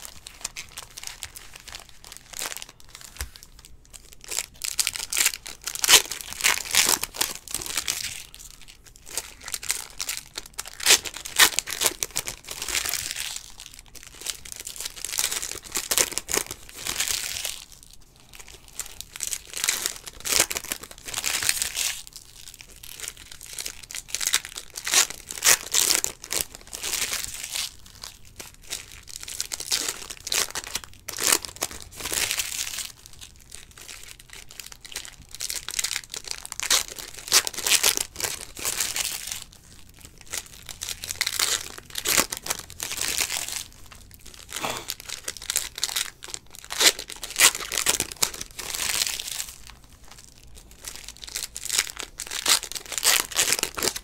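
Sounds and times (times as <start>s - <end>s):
foil wrappers crinkling and tearing: 0.0s - 54.0s.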